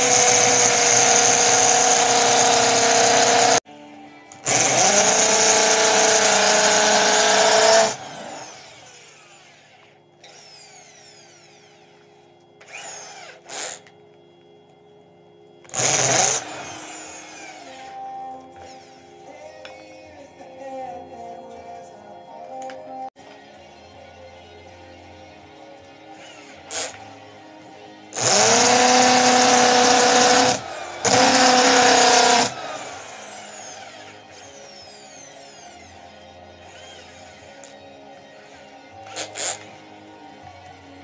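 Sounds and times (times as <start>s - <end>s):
drill winding down whine: 0.0s - 3.7s, 4.3s - 21.4s, 26.1s - 41.0s
electric drill shaving wood: 0.0s - 3.7s, 4.3s - 14.0s, 15.6s - 20.4s, 26.1s - 27.3s, 28.1s - 41.0s.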